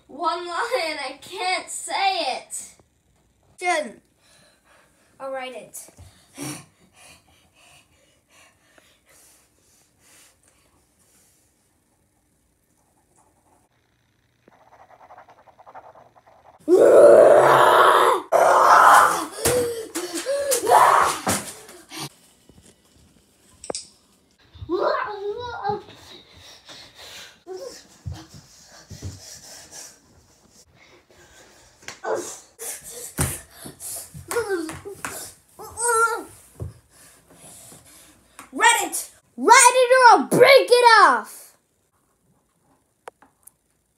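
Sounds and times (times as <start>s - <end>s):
boy panting: 6.0s - 10.5s, 19.1s - 20.7s, 25.8s - 35.4s
boy grunting and crying out: 16.7s - 22.0s.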